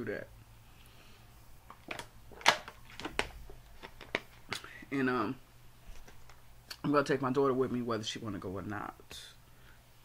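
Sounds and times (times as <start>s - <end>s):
plastic bottle crackling: 1.7s - 4.7s.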